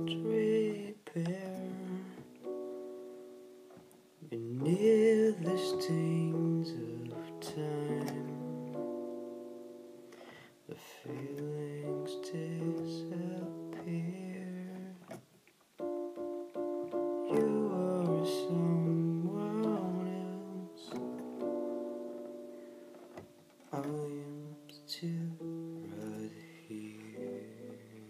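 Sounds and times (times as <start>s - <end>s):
synthesizer chords and melody: 2.2s - 10.6s, 15.8s - 28.0s.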